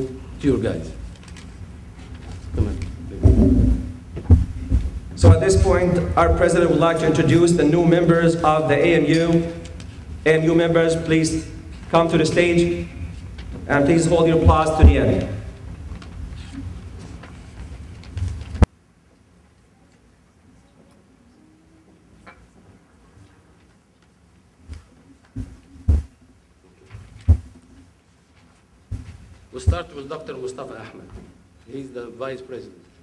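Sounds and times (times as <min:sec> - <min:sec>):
hall noise rumble: 0:02.4 - 0:17.1
low thuds on microphone: 0:03.1 - 0:06.4, 0:25.4 - 0:26.1, 0:27.3 - 0:27.6.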